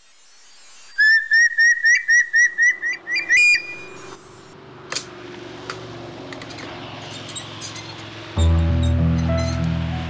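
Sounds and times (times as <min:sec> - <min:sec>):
bird whistling call: 0:00.9 - 0:04.1.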